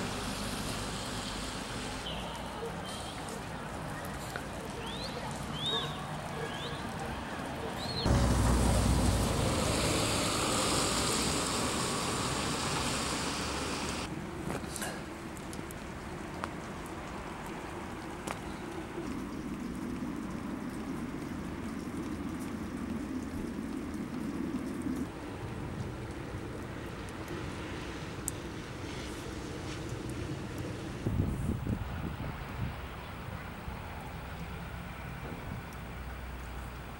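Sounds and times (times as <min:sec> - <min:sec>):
distant traffic: 0:00.0 - 0:36.9
wind: 0:00.0 - 0:36.9.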